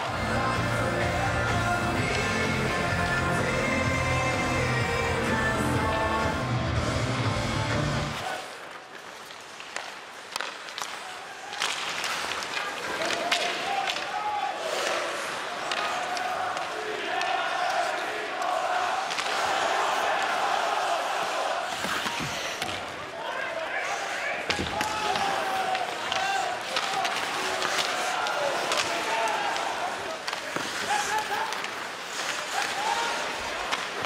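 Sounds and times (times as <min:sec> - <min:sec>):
hockey sticks and puck clacking: 0:00.0 - 0:06.1, 0:08.1 - 0:23.4, 0:24.3 - 0:34.0
crowd voices: 0:00.0 - 0:09.0, 0:11.0 - 0:34.0.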